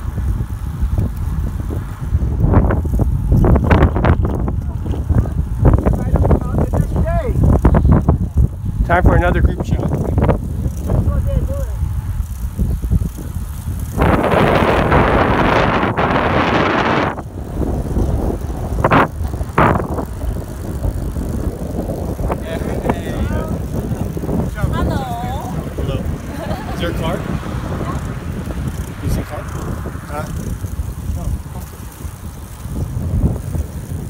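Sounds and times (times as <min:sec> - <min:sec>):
wind rushing over microphone: 0:00.0 - 0:34.0.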